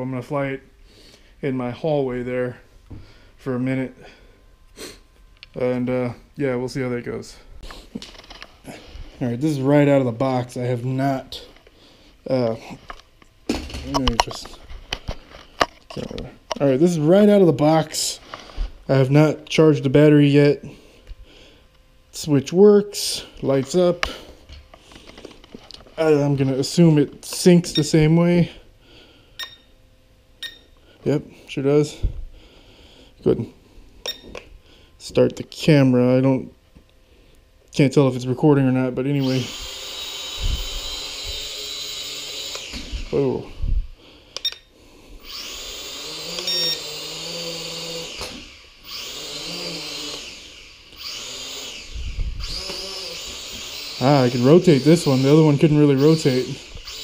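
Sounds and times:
soft handling noise: 0:12.7 - 0:16.8
quadcopter motors whining: 0:39.1 - 0:43.7, 0:44.4 - 0:57.0.

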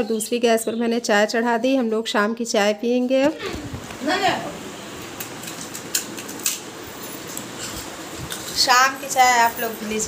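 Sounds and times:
steady room noise: 0:00.0 - 0:10.0.

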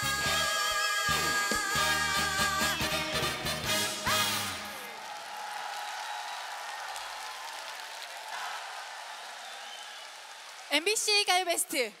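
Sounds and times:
large audience applauding: 0:04.3 - 0:11.8.

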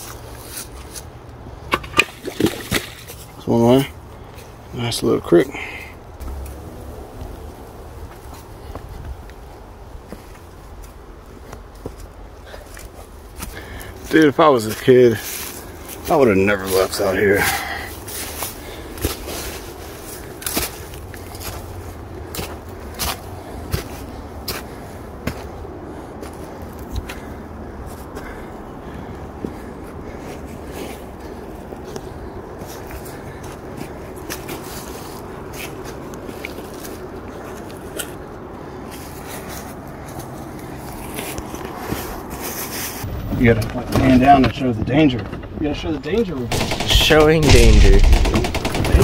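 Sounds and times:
footsteps on dirt trail: 0:05.6 - 0:44.1
low rumble: 0:06.2 - 0:08.3
sharp crackles: 0:44.9 - 0:49.0.

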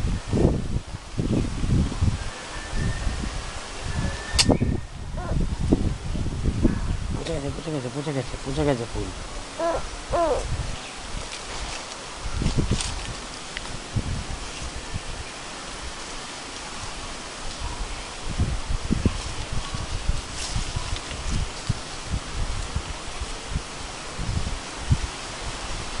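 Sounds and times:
wind buffeting microphone: 0:00.0 - 0:16.0, 0:16.7 - 0:26.0
leaves rustling in the wind: 0:00.0 - 0:26.0.

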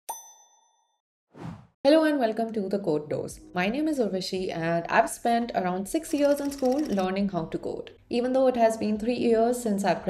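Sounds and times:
woman speaking: 0:01.9 - 0:10.0.

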